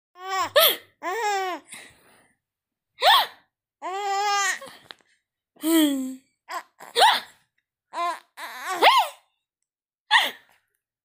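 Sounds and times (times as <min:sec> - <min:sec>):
baby squealing: 0:08.0 - 0:09.2.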